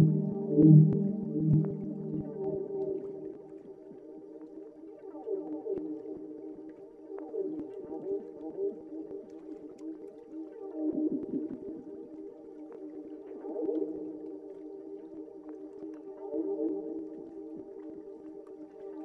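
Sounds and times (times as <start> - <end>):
ambient held tones: 0.0 - 3.3.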